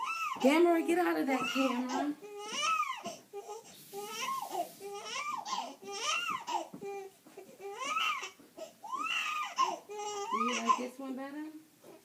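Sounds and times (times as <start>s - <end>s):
baby crying: 0.0s - 10.9s.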